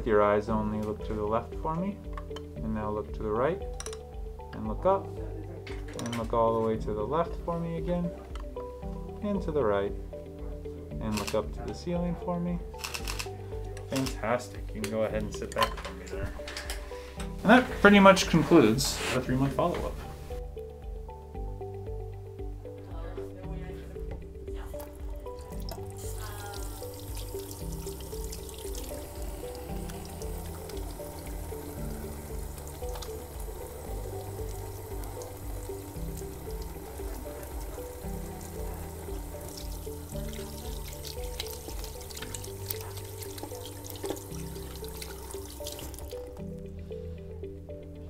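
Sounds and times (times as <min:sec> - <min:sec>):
background music: 0:00.0 - 0:48.0
tap water running into sink: 0:25.3 - 0:46.4.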